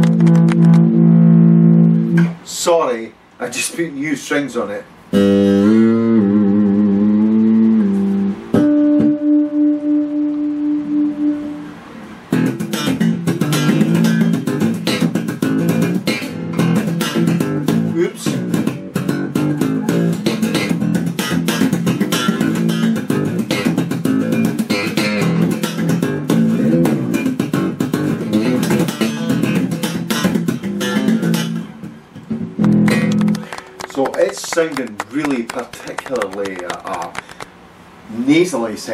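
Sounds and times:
electric bass guitar: 0:00.0 - 0:02.5, 0:05.1 - 0:37.3.

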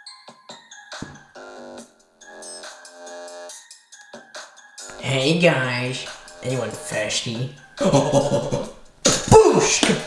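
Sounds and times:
electronic keyboard party music: 0:04.8 - 0:08.8.

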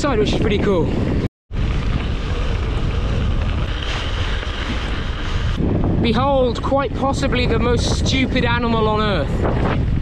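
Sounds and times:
wind rushing over microphone: 0:00.0 - 0:10.0
bike rolling on wet gravel: 0:01.5 - 0:05.6.

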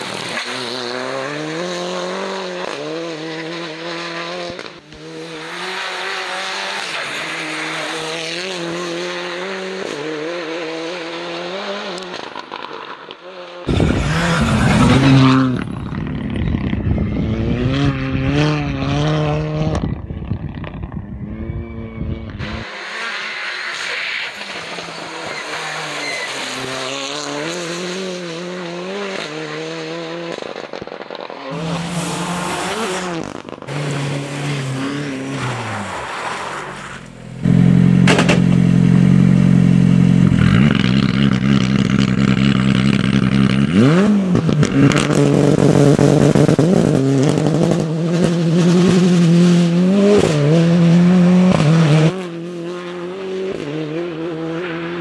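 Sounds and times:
car engine revving: 0:13.6 - 0:20.6, 0:21.2 - 0:55.0.

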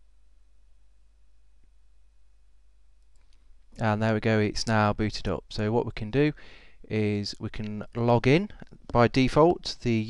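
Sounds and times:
low steady hum: 0:00.0 - 0:10.0
faint clicks: 0:03.0 - 0:03.5
man speaking: 0:03.8 - 0:10.0.

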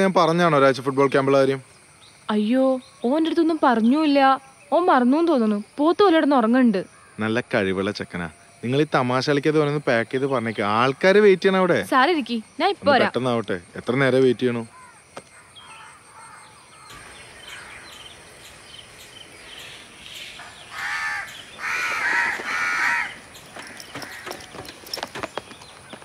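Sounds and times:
faint outdoor ambience: 0:00.0 - 0:26.0
crow cawing: 0:14.7 - 0:18.1, 0:20.4 - 0:24.7.

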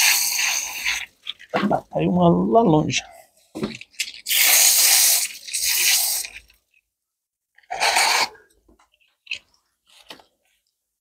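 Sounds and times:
hose spray hissing: 0:00.0 - 0:01.1, 0:04.2 - 0:06.4.

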